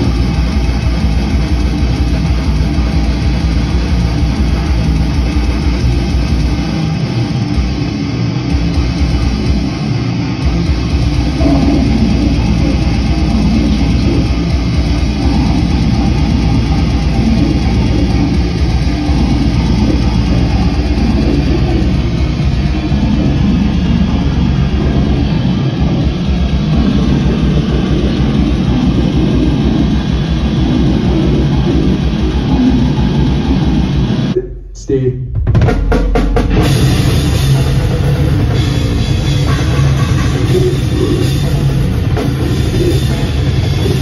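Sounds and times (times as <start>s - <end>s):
live band heavy guitar music: 0.0s - 34.4s, 35.5s - 44.0s.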